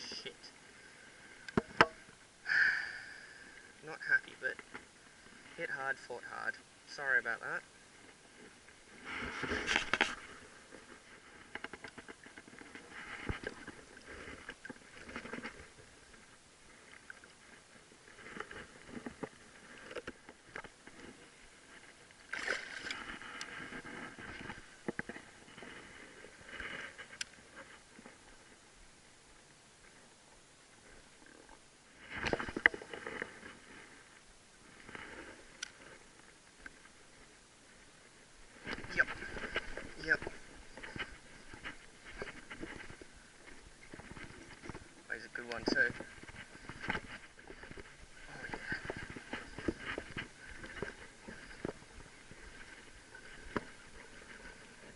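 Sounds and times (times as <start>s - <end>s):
shallow water splashing: 7.7s - 28.6s.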